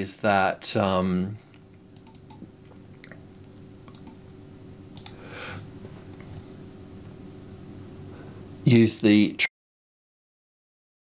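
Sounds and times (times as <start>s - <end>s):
faint steady hum: 0.0s - 9.5s
computer mouse clicks: 2.0s - 2.5s, 3.9s - 4.2s, 5.0s - 5.2s.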